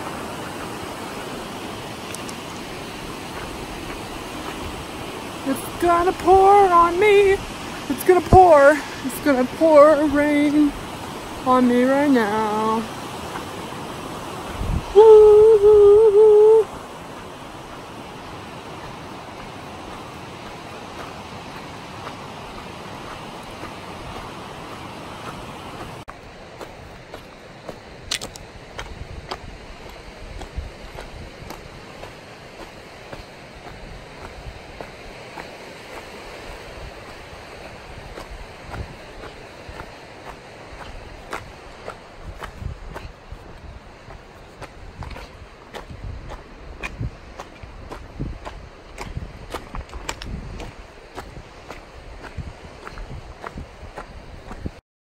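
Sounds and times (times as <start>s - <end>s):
footsteps on rocky dirt trail: 0.0s - 15.4s, 16.7s - 54.8s
wind buffeting microphone: 0.0s - 54.8s.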